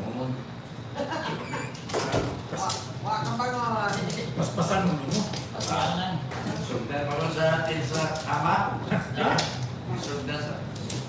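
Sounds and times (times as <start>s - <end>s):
people talking: 2.5s - 10.8s.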